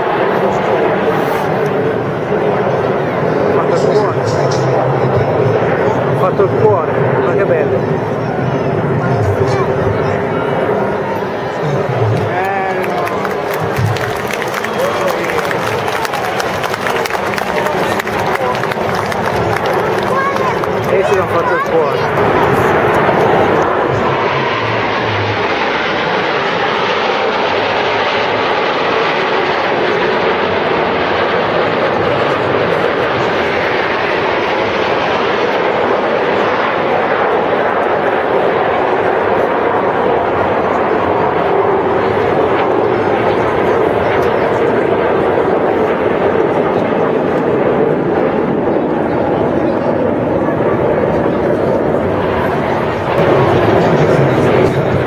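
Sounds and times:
crowd talking: 0.0 - 55.0
jet aircraft flying overhead: 0.0 - 55.0.

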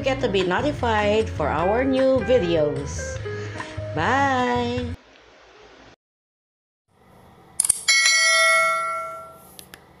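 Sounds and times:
bright bell ding: 7.9 - 9.5.

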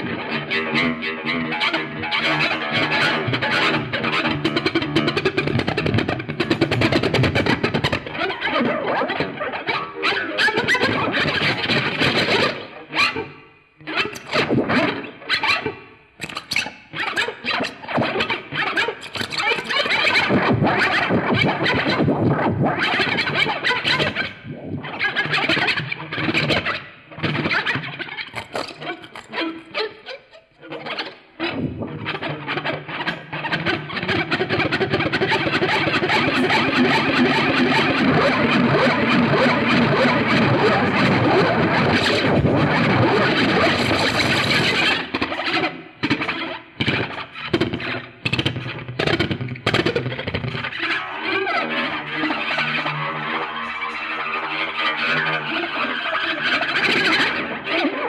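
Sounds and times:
distorted electric guitar: 0.0 - 57.9.

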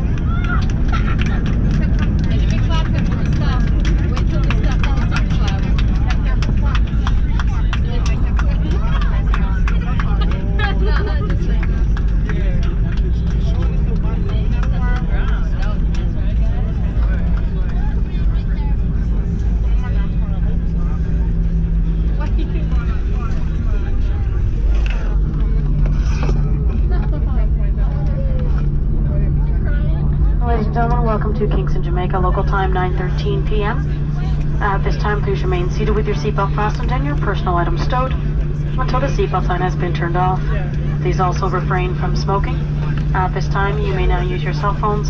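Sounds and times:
engine and wheel rumble: 0.0 - 45.0
passengers talking indistinctly: 0.0 - 45.0.

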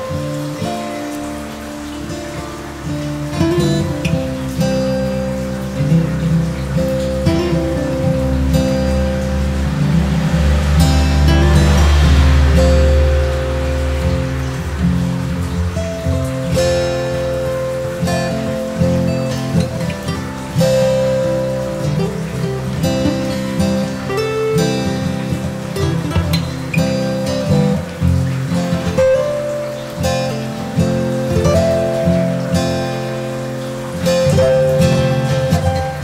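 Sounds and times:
background music with plucked notes: 0.0 - 36.0.

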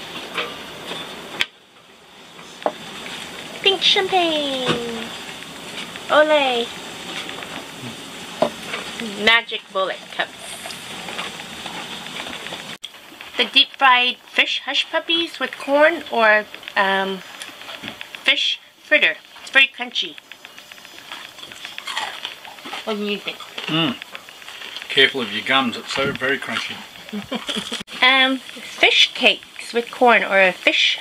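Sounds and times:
crunching crispy fried food: 20.1 - 27.8.

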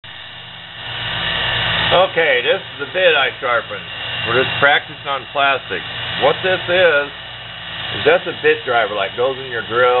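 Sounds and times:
small motor humming with whine: 0.0 - 10.0.

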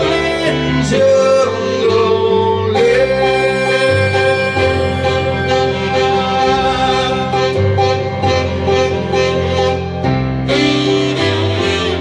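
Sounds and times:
held melody notes: 0.0 - 12.0
sustained keyboard chords: 0.0 - 12.0.

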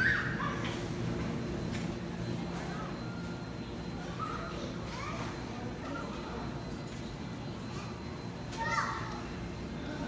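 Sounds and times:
store hall hum: 0.0 - 10.0.

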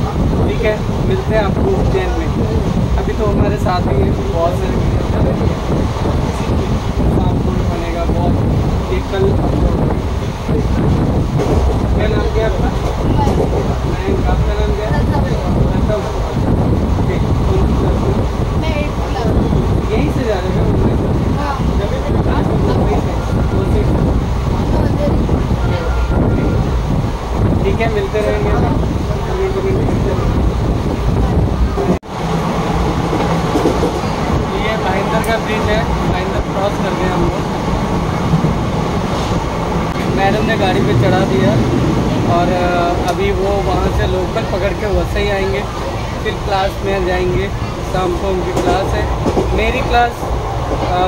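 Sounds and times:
train low rumble: 0.0 - 51.0
wind buffeting microphone: 0.0 - 51.0
faint voices: 33.7 - 51.0.

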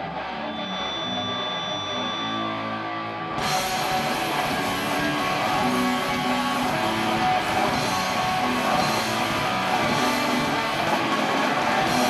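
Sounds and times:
punk rock electric guitar chords: 0.0 - 12.0
thin steady high tone: 0.4 - 2.6.

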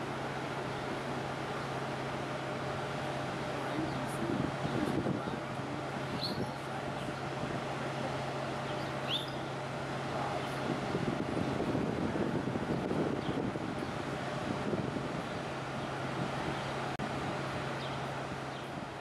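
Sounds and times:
low machinery hum: 0.0 - 19.0
rushing wind-like noise: 0.0 - 19.0
short bird chirps: 9.0 - 9.4.

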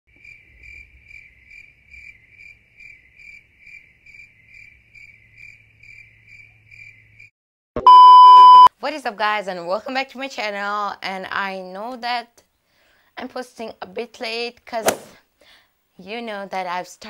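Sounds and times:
loud steady beep: 7.8 - 8.7.

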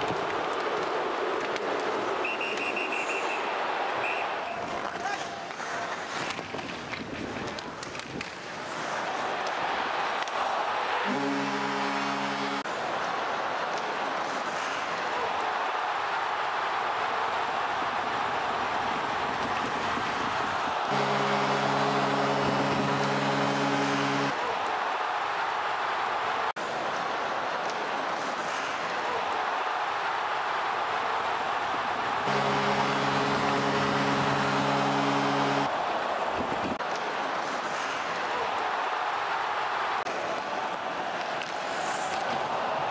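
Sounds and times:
arena crowd din: 0.0 - 42.9.

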